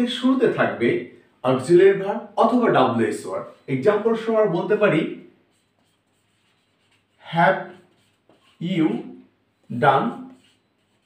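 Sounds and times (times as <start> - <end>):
marker writing on a whiteboard: 2.9 - 11.0.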